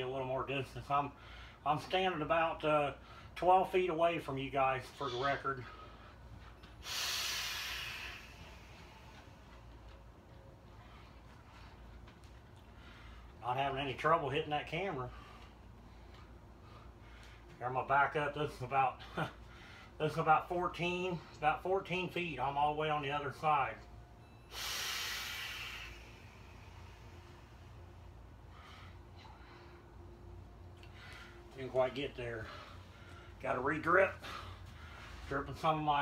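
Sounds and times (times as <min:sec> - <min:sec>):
low steady background: 0:00.0 - 0:36.0
vape inhale hiss: 0:06.8 - 0:09.1, 0:24.5 - 0:27.3.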